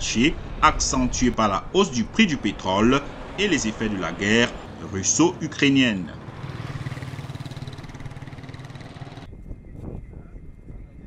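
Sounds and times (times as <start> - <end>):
motorcycle engine running: 6.1 - 9.3.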